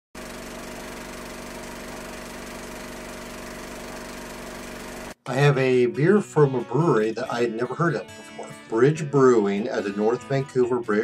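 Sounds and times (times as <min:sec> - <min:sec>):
mechanical whirring hum: 0:00.2 - 0:05.2.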